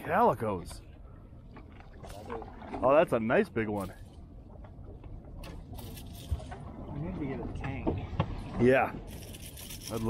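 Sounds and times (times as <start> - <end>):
sea and wind: 0.0 - 10.0.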